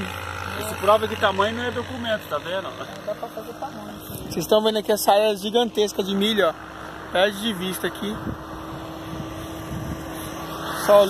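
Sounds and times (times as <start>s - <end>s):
road vehicle engine hum: 0.0s - 11.0s.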